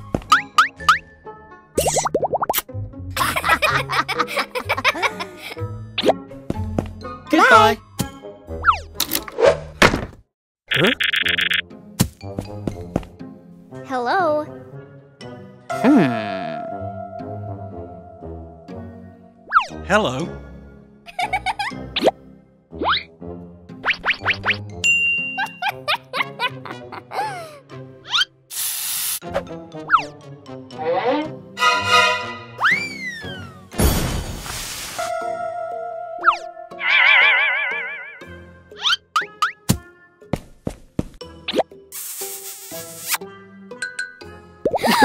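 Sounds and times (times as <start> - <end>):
light children's background music: 0.0 - 9.2, 11.7 - 16.1, 43.2 - 45.0
light background music: 0.0 - 9.5, 11.4 - 28.3, 29.2 - 33.7
cartoon sound effects: 10.7 - 11.6, 30.8 - 33.6, 36.2 - 39.5
spray bottle hiss: 28.5 - 29.2, 34.3 - 35.0, 41.9 - 43.2
rising cartoon squeaks: 30.8 - 31.4, 32.6 - 33.6, 36.8 - 38.2.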